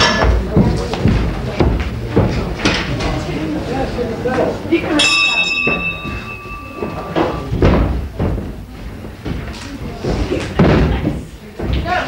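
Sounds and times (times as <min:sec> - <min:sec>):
ring bell ringing: 0:05.0 - 0:07.5.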